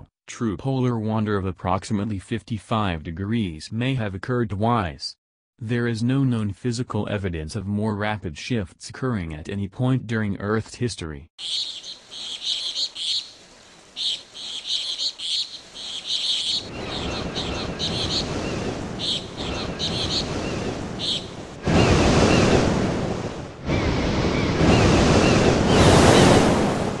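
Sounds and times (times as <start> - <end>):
high chirping: 11.4 - 22.6
sea surf washing onto beach: 16.6 - 27.0.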